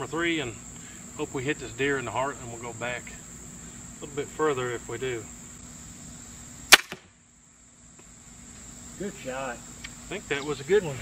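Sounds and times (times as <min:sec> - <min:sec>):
crickets trilling: 0:00.0 - 0:11.0
bolt striking foam target: 0:06.7 - 0:07.1
crossbow string release crack: 0:06.7 - 0:07.1.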